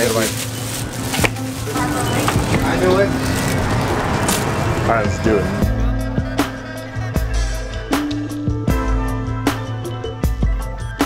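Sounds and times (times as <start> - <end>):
indistinct voices: 0.0 - 8.6.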